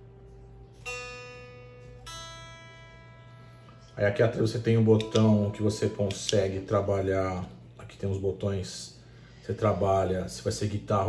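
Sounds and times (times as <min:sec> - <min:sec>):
electric guitar strings plucked: 0:00.0 - 0:07.0.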